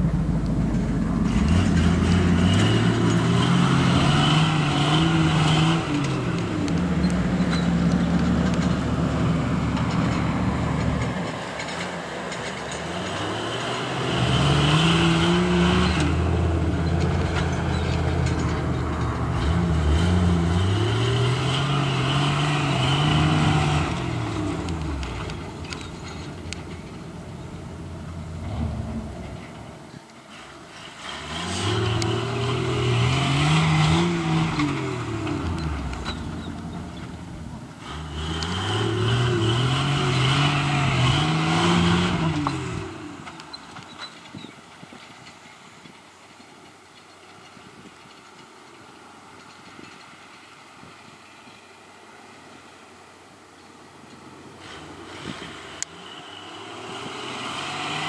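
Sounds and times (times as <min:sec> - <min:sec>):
engine revving hard: 0:01.1 - 0:11.8, 0:12.4 - 0:27.0, 0:27.7 - 0:43.3, 0:54.6 - 0:58.0.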